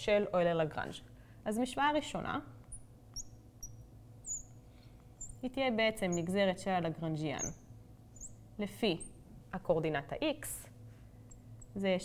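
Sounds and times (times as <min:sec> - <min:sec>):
marker squeaking on glass: 0:02.7 - 0:04.6, 0:05.2 - 0:06.4, 0:07.3 - 0:08.4.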